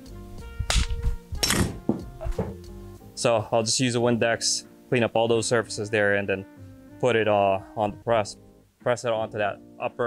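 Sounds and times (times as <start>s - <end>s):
lighter knock: 0.7s - 1.8s.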